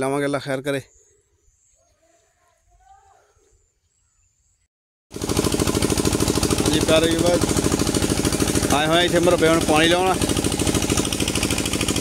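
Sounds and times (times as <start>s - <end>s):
faint bird chirps: 0.7s - 4.7s
pump engine chugging: 5.1s - 12.0s.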